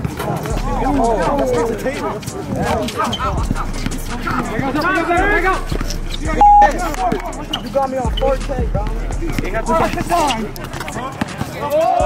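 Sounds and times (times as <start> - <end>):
players calling and shouting: 0.0 - 12.0.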